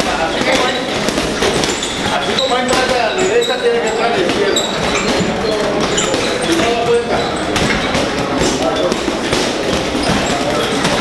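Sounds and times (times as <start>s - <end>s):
gloved punches on bags: 0.0s - 3.1s.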